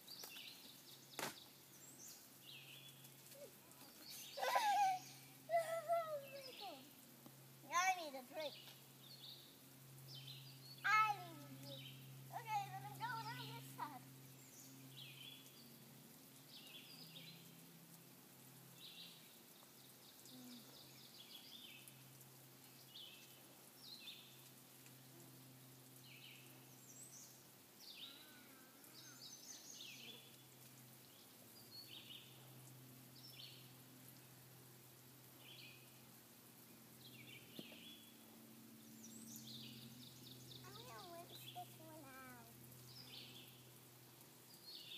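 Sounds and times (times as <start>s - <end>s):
songbirds chirping: 0.0s - 44.9s.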